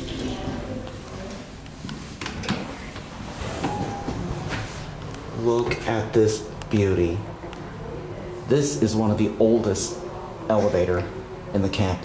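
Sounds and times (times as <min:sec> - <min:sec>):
door squeak: 0:03.4 - 0:04.6
door swinging open: 0:03.4 - 0:04.8.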